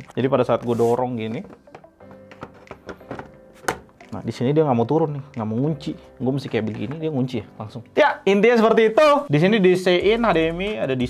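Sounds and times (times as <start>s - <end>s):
faint background music: 0.0s - 11.0s
monitor stand clicks and knocks: 1.4s - 4.0s.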